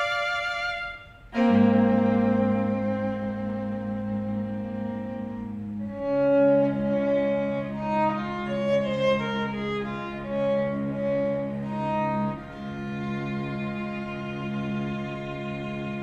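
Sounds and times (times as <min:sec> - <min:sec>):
cello long low notes: 0:00.0 - 0:16.0
violin melody: 0:00.0 - 0:16.0.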